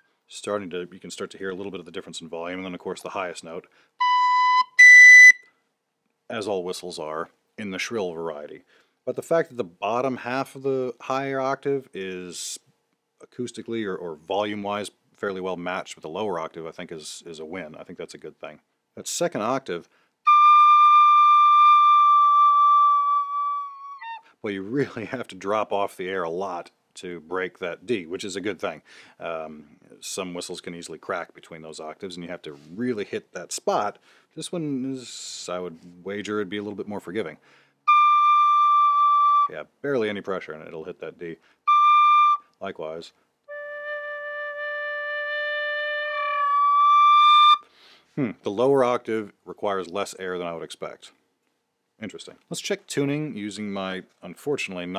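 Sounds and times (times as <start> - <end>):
tin whistle high note: 4.0 - 5.5, 20.3 - 24.3, 37.9 - 39.5, 41.7 - 42.5, 43.5 - 47.7.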